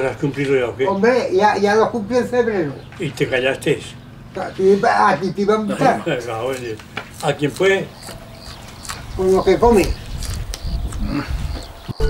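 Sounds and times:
man chewing crunchy onion: 6.5 - 11.9.

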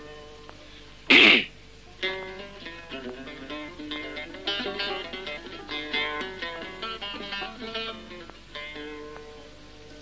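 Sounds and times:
plucked-string music: 0.0 - 1.1, 1.8 - 10.0.

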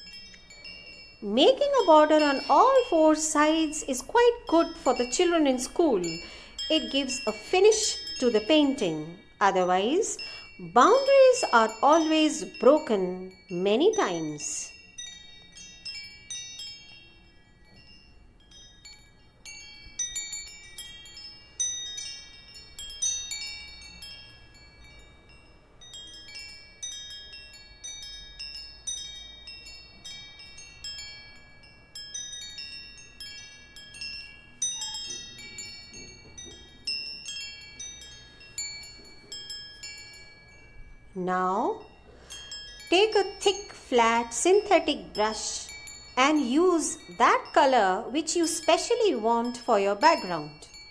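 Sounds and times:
high chime tones: 0.0 - 50.9.

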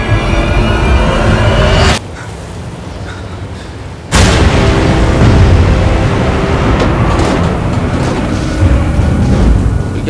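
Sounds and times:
trailer music: 0.0 - 2.0, 4.1 - 10.0
wind and waves rumbling: 2.0 - 10.0.

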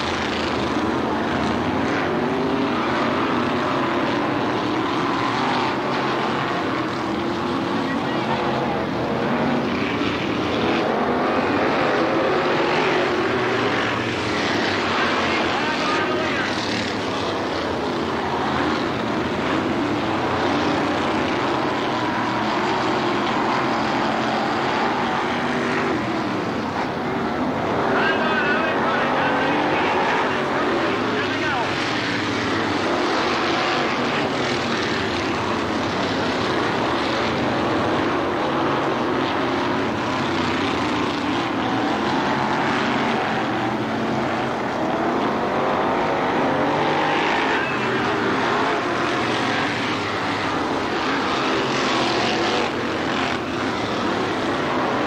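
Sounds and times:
race car engines droning: 0.0 - 55.0.

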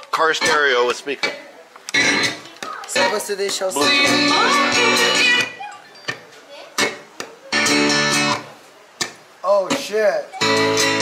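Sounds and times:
guitar music from loudspeaker: 1.9 - 5.7, 6.8 - 8.5, 10.4 - 11.0.

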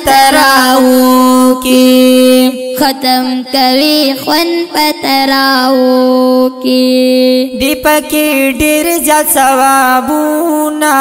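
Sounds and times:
boy singing long notes: 0.0 - 11.0.

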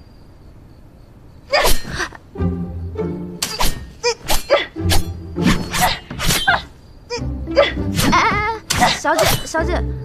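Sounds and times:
background music with low notes: 2.2 - 10.0.

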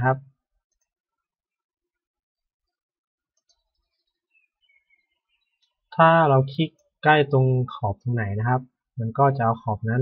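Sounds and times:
man speaking: 0.0 - 0.4, 5.9 - 10.0.

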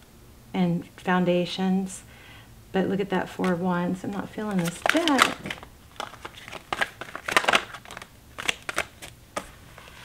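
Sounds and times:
cards being shuffled: 3.4 - 10.0.

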